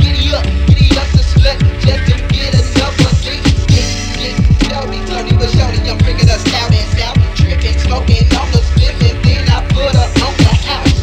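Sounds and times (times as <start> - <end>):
rapping over a beat: 0.0 - 11.0
deep bass drum hits: 5.3 - 7.6.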